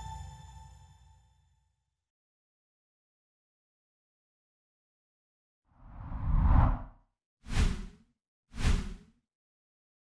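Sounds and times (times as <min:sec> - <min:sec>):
whoosh with deep rumble: 0:05.8 - 0:06.9.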